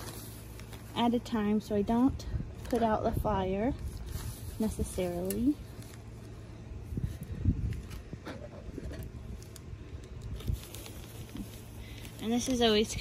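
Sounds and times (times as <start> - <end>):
wood shavings rustling in plastic bag: 0.0 - 1.7, 2.5 - 6.4, 9.2 - 13.0
low steady rumble: 0.0 - 13.0.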